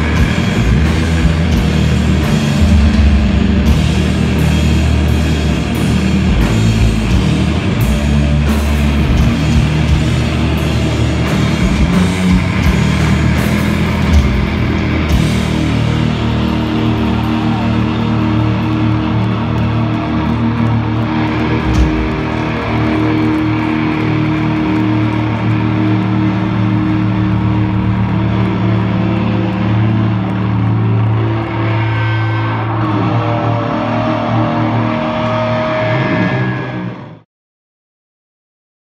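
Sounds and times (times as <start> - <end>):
drum strikes: 0.0 - 16.1, 21.6 - 23.4
electric guitar and bass droning: 0.0 - 37.2.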